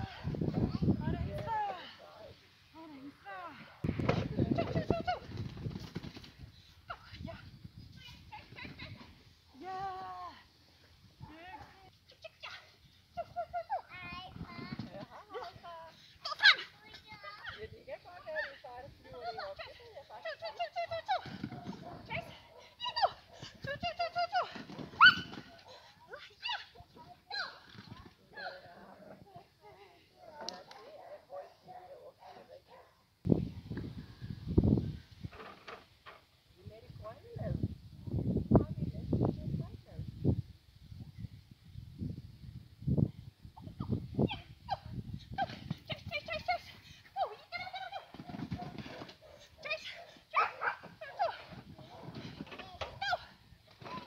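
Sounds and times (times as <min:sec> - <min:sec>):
small dog barking and yapping: 0:25.0 - 0:25.8, 0:47.9 - 0:52.2.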